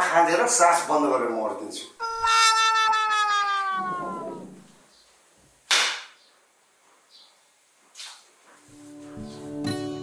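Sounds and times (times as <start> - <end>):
downward sliding tone: 2.0 - 4.7
sharp crack: 5.7 - 6.2.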